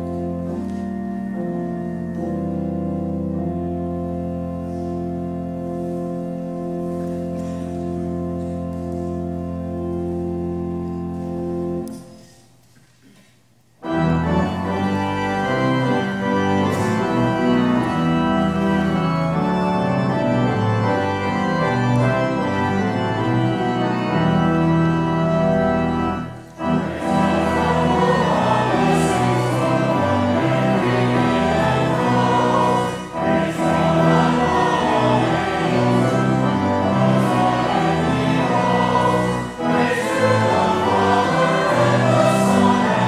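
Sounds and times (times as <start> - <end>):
church organ music: 0.0 - 43.0.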